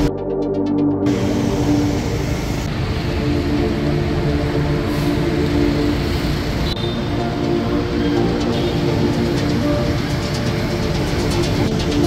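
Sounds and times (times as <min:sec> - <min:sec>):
motorbike and car engines: 0:01.0 - 0:12.0.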